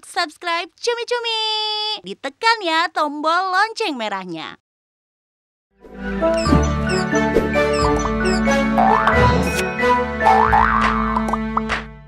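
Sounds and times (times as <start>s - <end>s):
springy boing effects: 10.2s - 11.4s.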